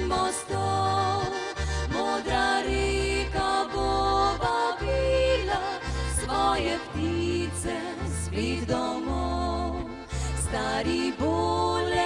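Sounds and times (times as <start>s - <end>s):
bass line: 0.0s - 12.0s
piano accordion melody: 0.0s - 12.0s.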